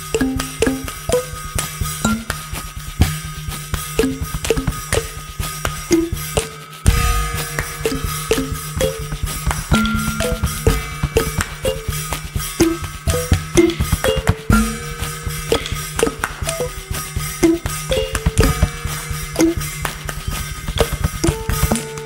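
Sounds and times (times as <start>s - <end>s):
acoustic percussion beat: 0.0s - 22.0s
low drone: 6.8s - 13.9s.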